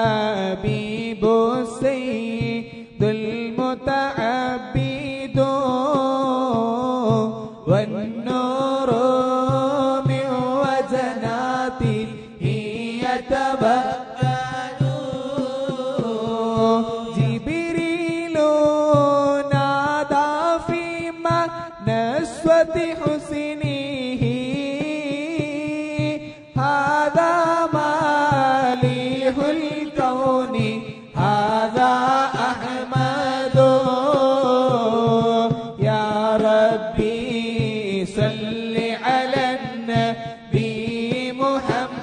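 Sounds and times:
devotional chanting: 0:00.0 - 0:42.0
voices chanting melismatically: 0:10.7 - 0:17.3, 0:31.2 - 0:34.4.

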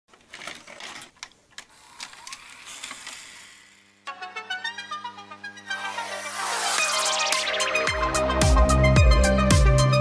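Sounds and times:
short rising tone: 0:03.0 - 0:07.9.

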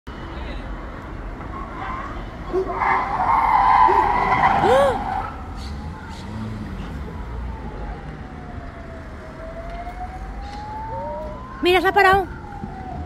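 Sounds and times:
street traffic rumble: 0:00.1 - 0:13.0
car tyres squealing: 0:01.4 - 0:06.6.

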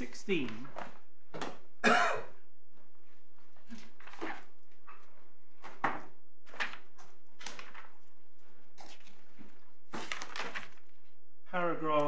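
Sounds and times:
paper pages rustling: 0:03.4 - 0:11.2.

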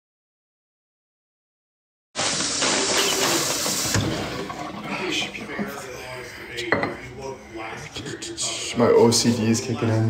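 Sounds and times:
bottle knocking on countertop: 0:06.7 - 0:07.0.

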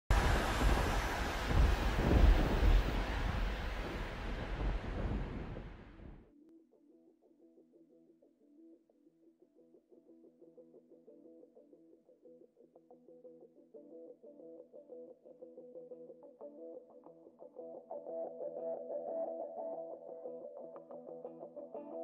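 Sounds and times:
loud rushing rumble: 0:00.1 - 0:06.2.

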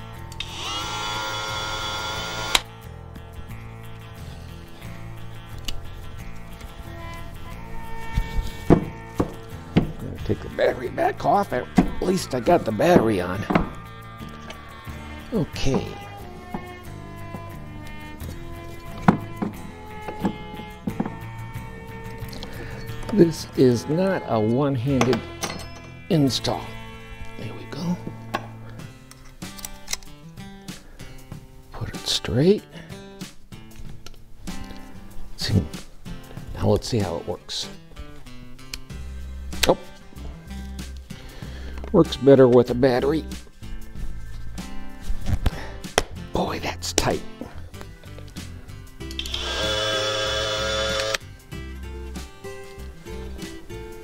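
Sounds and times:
background music: 0:00.0 - 0:54.0
multi-tool motor whining: 0:00.4 - 0:02.7, 0:49.2 - 0:51.2
knocks of tool handling: 0:08.6 - 0:10.0, 0:12.9 - 0:13.8, 0:18.9 - 0:21.2.

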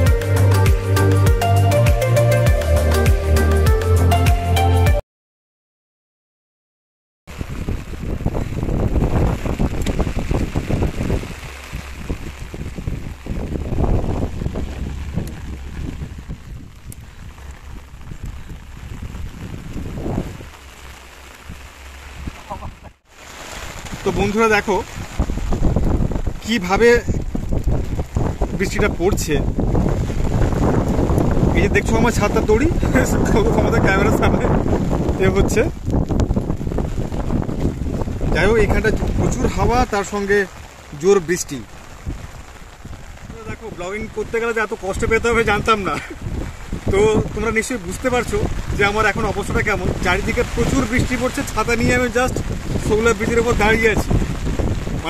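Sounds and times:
rain falling: 0:00.0 - 0:04.3, 0:07.3 - 0:55.0
wind buffeting microphone: 0:07.3 - 0:55.0.

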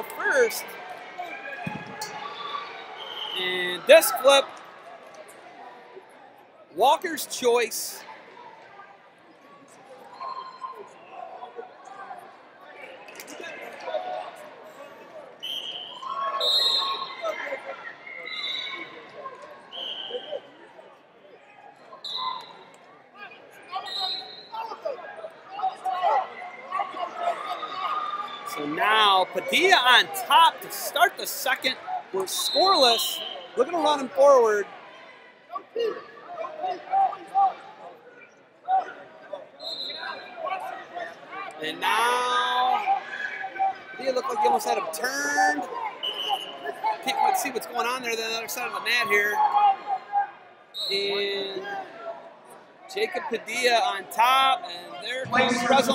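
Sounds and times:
hall background noise: 0:00.0 - 0:05.7, 0:28.4 - 0:35.0, 0:41.2 - 0:55.9
crowd shouting in arena: 0:00.0 - 0:55.9
shouted calls from crowd: 0:15.4 - 0:20.5, 0:38.7 - 0:52.1.

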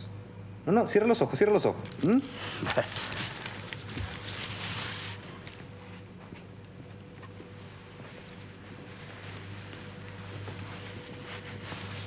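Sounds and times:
steady low hum: 0:00.0 - 0:12.0
blanket rustling: 0:08.5 - 0:12.0.

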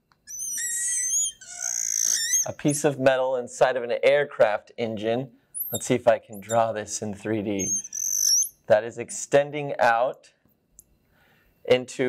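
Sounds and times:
marker squeaking on glass: 0:00.0 - 0:02.8, 0:05.6 - 0:06.7, 0:07.5 - 0:08.6.

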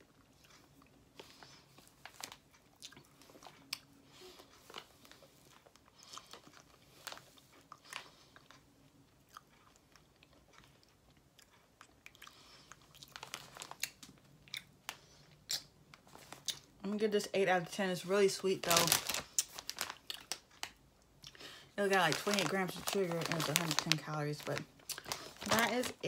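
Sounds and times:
plastic bag rustling: 0:01.2 - 0:02.5, 0:06.3 - 0:08.3, 0:13.0 - 0:14.0, 0:18.0 - 0:20.8, 0:21.4 - 0:26.0.

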